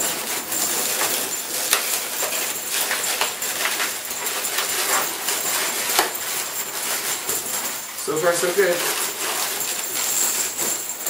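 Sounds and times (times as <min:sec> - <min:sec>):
balloons rubbing and squeaking: 0:00.0 - 0:11.0
small bells jingling: 0:00.0 - 0:11.0.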